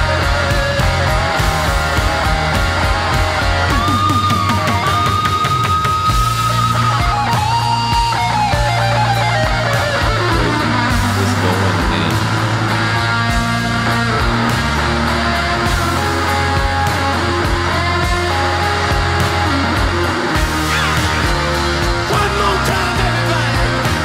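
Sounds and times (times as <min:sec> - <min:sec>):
bass notes: 0:00.0 - 0:24.0
drums: 0:00.0 - 0:24.0
electric guitar solo: 0:00.0 - 0:24.0.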